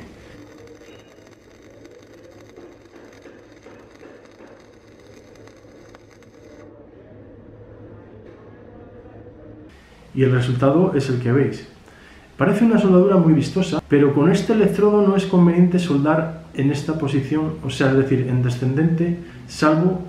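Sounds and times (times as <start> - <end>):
welding arc crackling hiss: 0.0 - 6.7.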